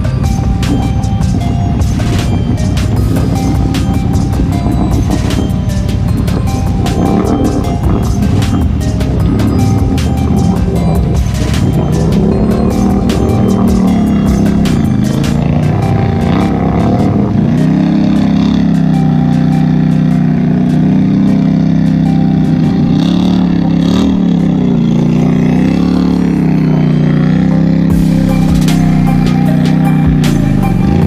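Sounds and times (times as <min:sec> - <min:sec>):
music: 0:00.0 - 0:31.0
quad bike engine revving: 0:00.0 - 0:31.0.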